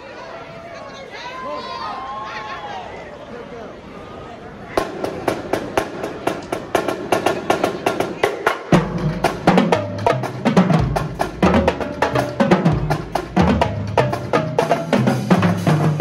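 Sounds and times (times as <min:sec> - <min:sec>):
snare and tenor drums: 0:04.8 - 0:16.0
low bass drum notes: 0:08.8 - 0:16.0.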